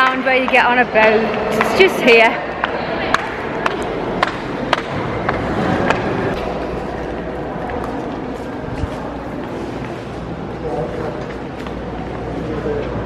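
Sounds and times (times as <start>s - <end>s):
murmur of voices: 0.0s - 13.0s.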